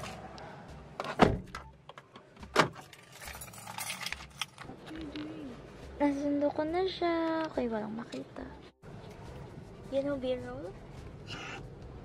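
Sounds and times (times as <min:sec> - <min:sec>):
keys jangling: 0:02.8 - 0:04.7.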